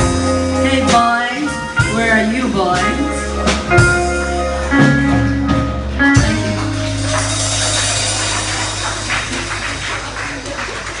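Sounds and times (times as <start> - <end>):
applause: 6.4 - 11.0.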